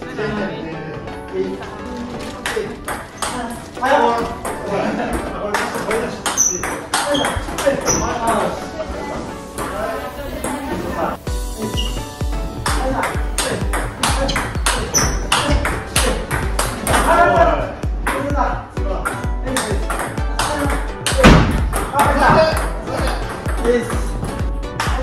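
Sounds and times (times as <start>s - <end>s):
ping pong ball hitting bats: 2.4s - 8.6s, 12.6s - 17.2s, 18.0s - 18.3s, 19.0s - 25.0s
ball bouncing on table: 6.2s - 8.5s, 19.0s - 23.6s.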